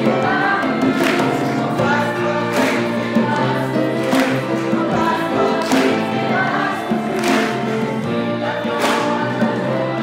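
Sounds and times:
conga drums: 0.0s - 10.0s
group of young people singing: 0.0s - 10.0s
violins: 0.0s - 10.0s.

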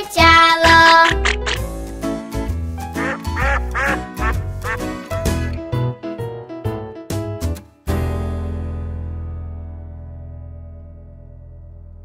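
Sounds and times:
bouncy children's song instrumental: 0.0s - 5.8s
cartoon duck quacking: 0.7s - 1.6s, 3.0s - 4.8s.

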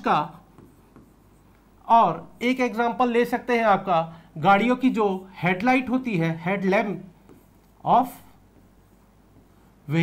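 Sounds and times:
marker scratching on whiteboard: 0.0s - 10.0s.

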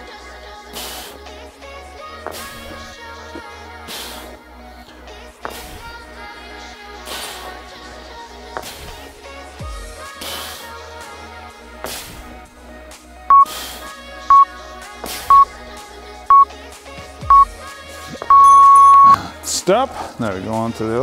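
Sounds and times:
background music: 0.0s - 21.0s
interval timer beeps: 13.3s - 13.5s, 17.3s - 17.5s, 18.2s - 19.2s.

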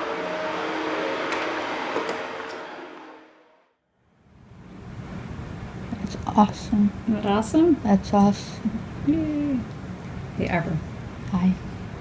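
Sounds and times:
background hum and hiss: 4.1s - 12.0s.

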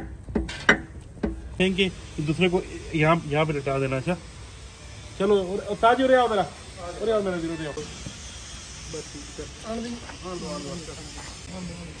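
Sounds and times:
steady high hiss: 0.0s - 12.0s
men talking: 1.4s - 4.4s, 5.1s - 12.0s.

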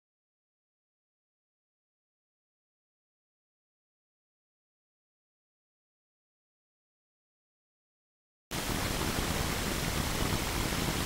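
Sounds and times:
steady hiss: 8.6s - 11.0s.

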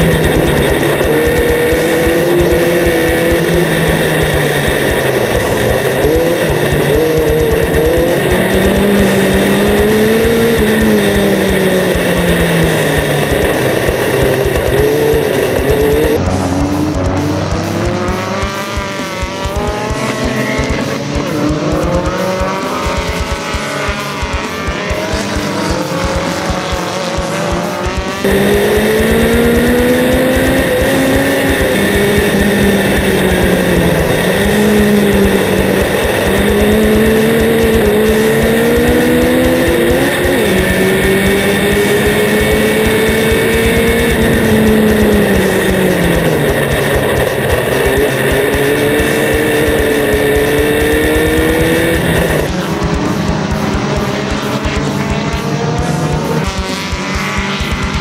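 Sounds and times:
race car engine revving: 0.0s - 58.0s
race cars revving past: 0.0s - 58.0s.

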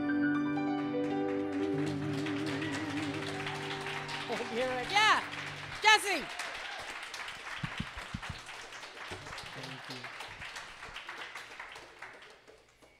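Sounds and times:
audience applauding: 1.0s - 13.0s.

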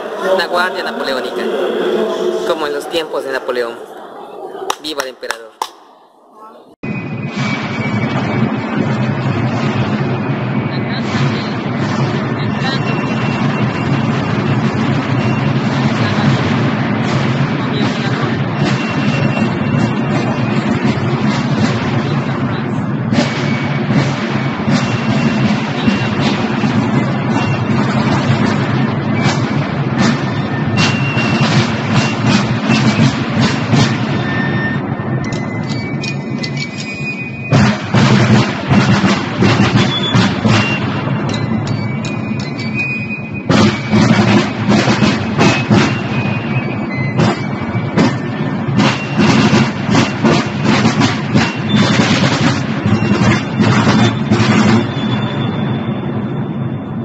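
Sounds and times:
side drums marching cadence: 4.6s - 6.0s, 6.9s - 56.2s.

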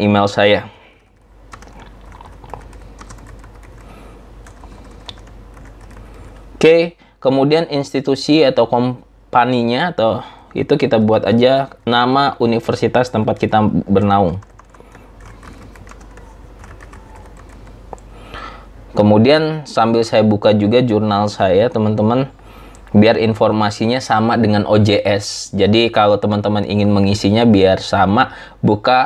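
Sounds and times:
computer keyboard typing: 1.0s - 6.6s, 10.4s - 18.1s.

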